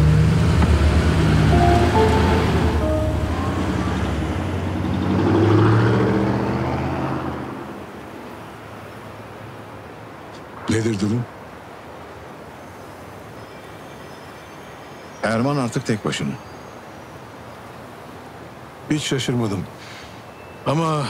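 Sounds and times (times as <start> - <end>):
suv driving past: 0.0 - 7.7
background music with held notes: 1.2 - 5.2.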